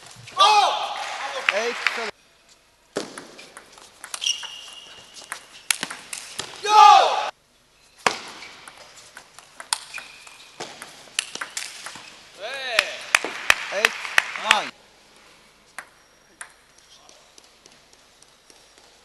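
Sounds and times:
players shouting: 0.4 - 1.9, 6.6 - 7.3
table tennis ball clicking: 9.2 - 12.0.

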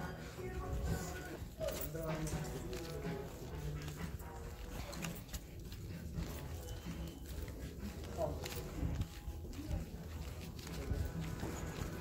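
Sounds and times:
footsteps on tiled floor: 0.0 - 12.0.

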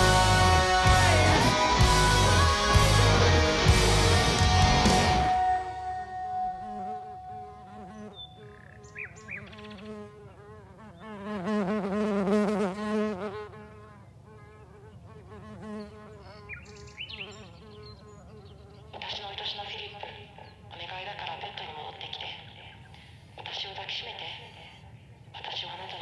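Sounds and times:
insects buzzing: 6.6 - 22.2.

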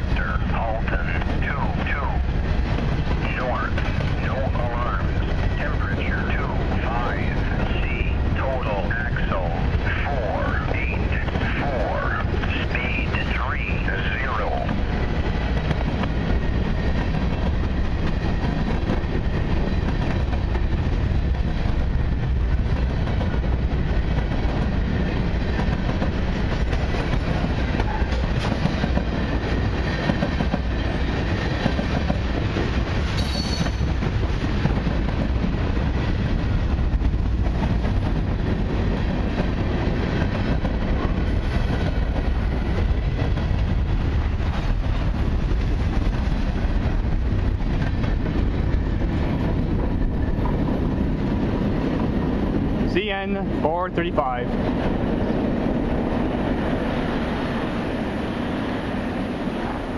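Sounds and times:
train wheels rumbling on rails: 0.0 - 59.9.

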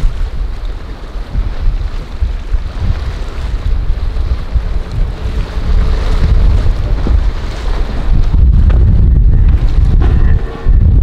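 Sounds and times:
loud wind rumble on microphone: 0.0 - 11.0
outboard motor running: 0.0 - 11.0
rushing water: 0.0 - 11.0.

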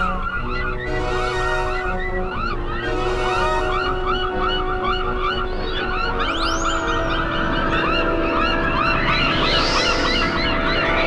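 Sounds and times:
cartoon birds chirping: 0.0 - 11.0
held orchestral notes: 0.0 - 11.0
swooping pitch glides: 0.0 - 11.0.

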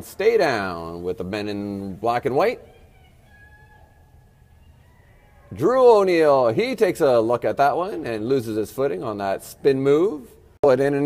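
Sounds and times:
distant high-pitched call: 2.6 - 5.5.

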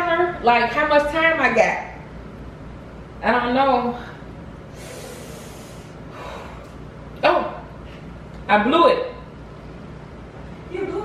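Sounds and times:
person blowing out breath: 4.7 - 6.7.

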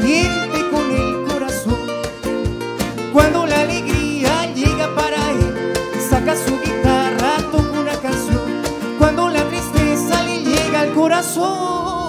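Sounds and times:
cajon beats: 0.0 - 12.0
strummed acoustic guitars: 0.0 - 12.0
violin: 0.0 - 12.0.

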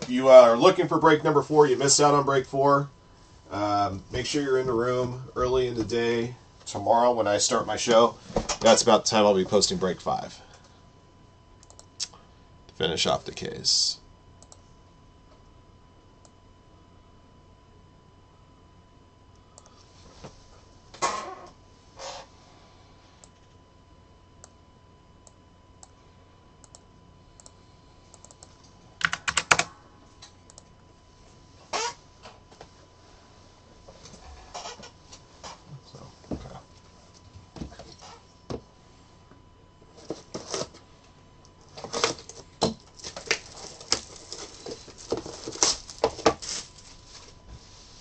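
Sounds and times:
keyboard typing: 28.1 - 29.7
shrink-wrap plastic tearing: 41.8 - 46.8.

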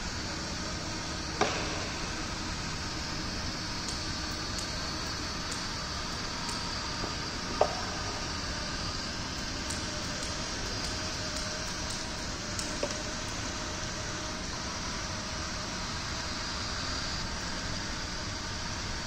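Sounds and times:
faint motor whine: 0.0 - 19.0.

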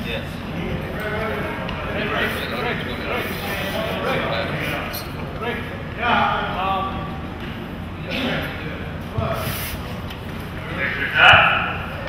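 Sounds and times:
men talking indistinctly: 0.0 - 12.0
steady low hum: 0.0 - 12.0.

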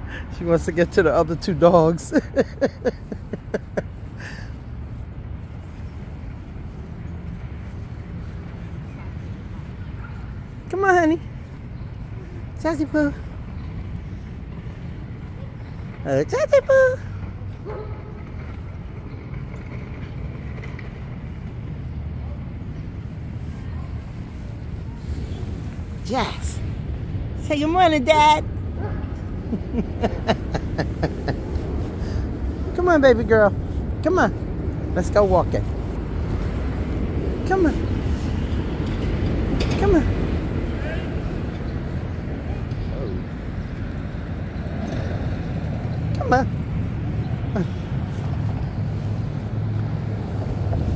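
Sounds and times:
distant city traffic rumble: 0.0 - 50.9.

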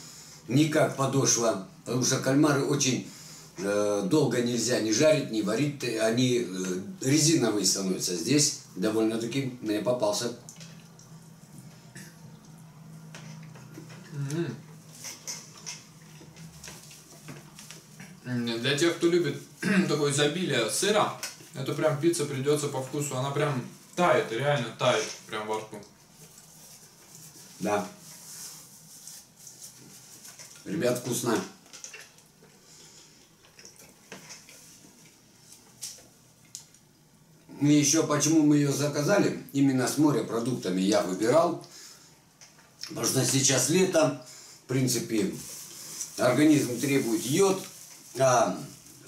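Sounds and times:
people chewing: 10.4 - 18.4, 25.0 - 36.9
person humming mm: 14.0 - 14.7
chewing and mouth sounds: 31.6 - 36.9.

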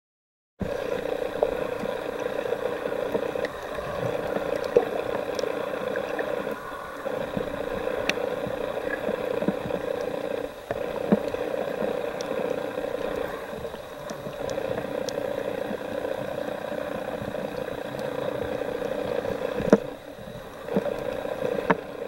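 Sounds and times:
faint clicks and crackles: 0.6 - 22.0
muffled underwater hum: 0.6 - 22.0.

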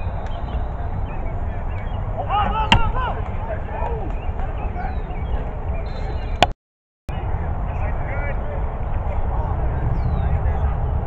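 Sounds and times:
players shouting: 0.8 - 6.3
steady low rumble: 7.1 - 11.0.

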